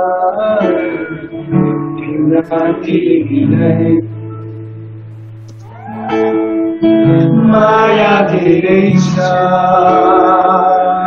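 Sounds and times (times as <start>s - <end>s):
person singing: 0.0s - 4.4s, 7.0s - 11.0s
acoustic guitar: 0.0s - 11.0s.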